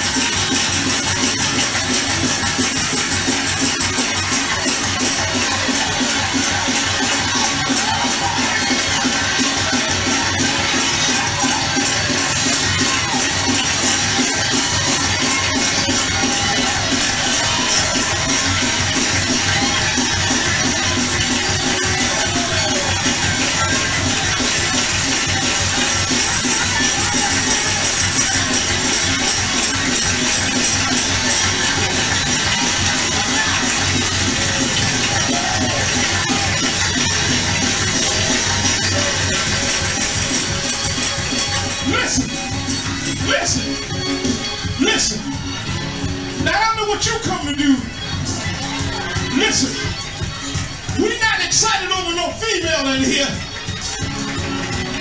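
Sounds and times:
shaker percussion: 0:00.0 - 0:43.2
crowd in a hall: 0:00.0 - 0:55.0.

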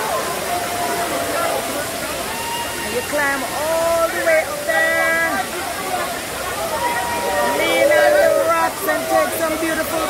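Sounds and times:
people talking: 0:00.0 - 0:10.0
waterfall rushing: 0:00.0 - 0:10.0.

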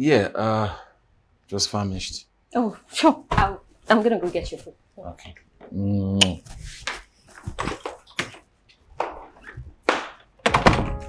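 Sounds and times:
wooden door knocking shut: 0:10.4 - 0:11.0.

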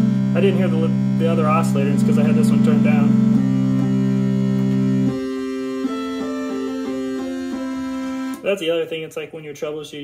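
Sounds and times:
synthesizer holding notes: 0:00.0 - 0:08.8.

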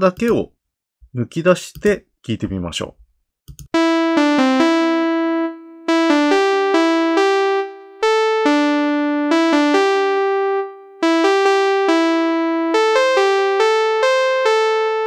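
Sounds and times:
synthesizer lead melody: 0:03.7 - 0:15.0.

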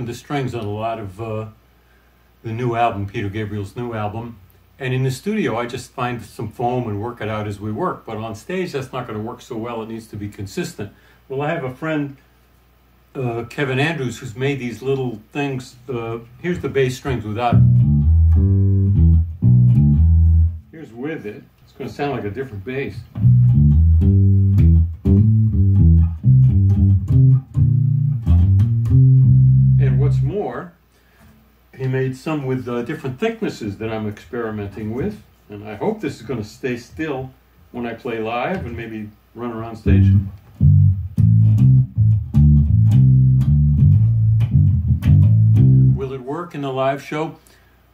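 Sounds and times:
electric bass guitar notes: 0:16.5 - 0:20.7, 0:23.1 - 0:30.4, 0:39.8 - 0:46.1.

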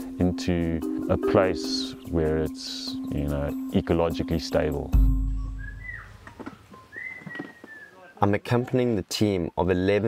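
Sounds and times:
forest ambience: 0:00.8 - 0:08.9
bird whistled call: 0:05.4 - 0:08.2.

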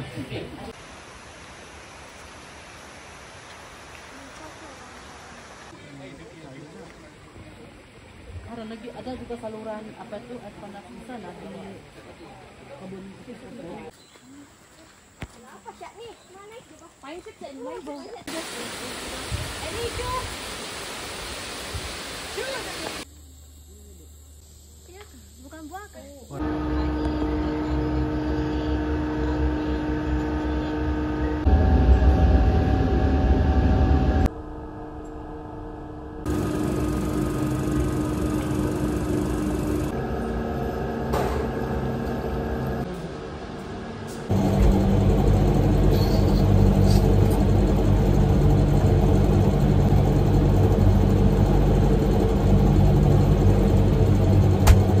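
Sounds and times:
low rumble: 0:26.4 - 0:55.0
ventilation hum: 0:26.4 - 0:55.0.

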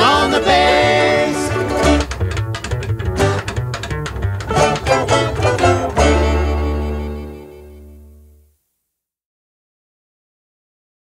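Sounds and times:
bluegrass string band playing: 0:00.0 - 0:08.4
quick plucked picking: 0:00.0 - 0:08.4
bowed held notes: 0:00.0 - 0:08.5
steady bass: 0:00.0 - 0:08.5.

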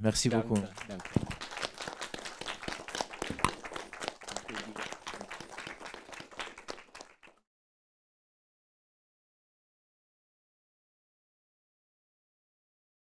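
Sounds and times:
audience applauding: 0:00.3 - 0:07.4.

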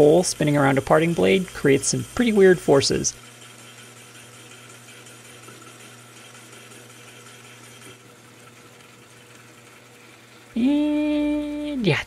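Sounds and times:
metal lathe cutting brass: 0:00.0 - 0:08.1.

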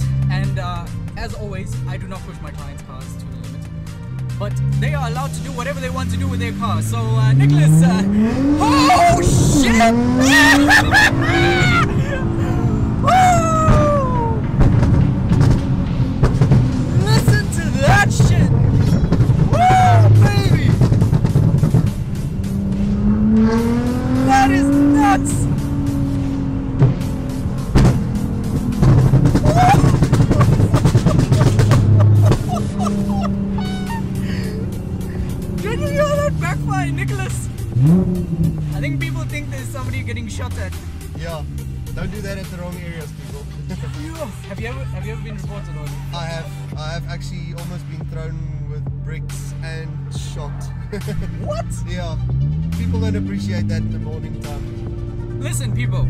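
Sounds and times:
car engine revving at full throttle: 0:00.0 - 0:56.0.

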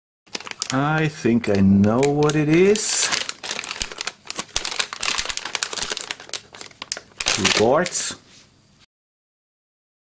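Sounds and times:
plastic bags crinkling: 0:00.3 - 0:08.2.

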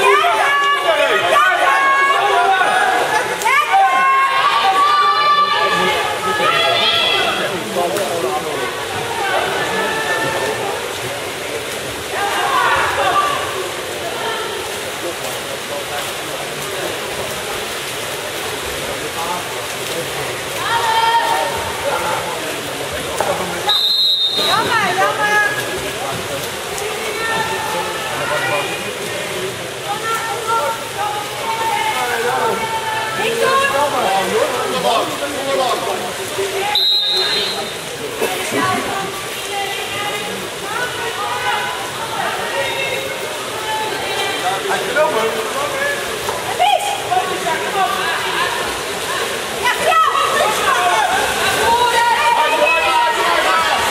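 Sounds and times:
voices shouting: 0:00.0 - 0:07.6, 0:12.1 - 0:14.6, 0:45.9 - 0:53.9
water splashing and churning: 0:00.0 - 0:53.9.

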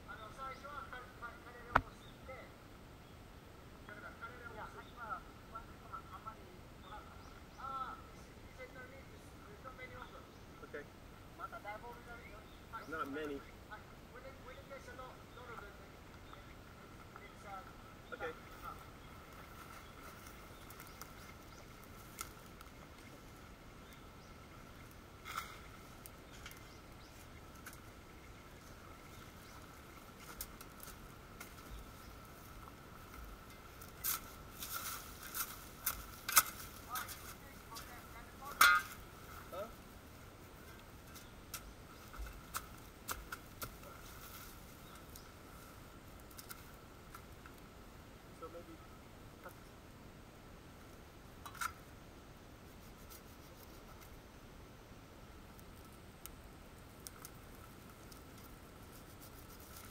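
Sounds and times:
hand tools scraping soil: 0:33.8 - 0:39.0, 0:58.0 - 0:59.9.

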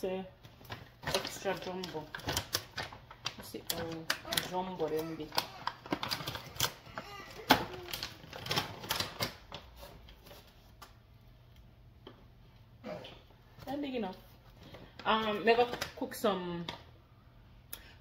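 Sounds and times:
plastic bag crinkling: 0:00.6 - 0:09.8.

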